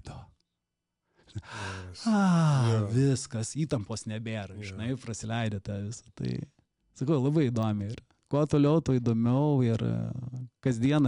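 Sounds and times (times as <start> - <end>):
man sighing: 1.4 - 3.0.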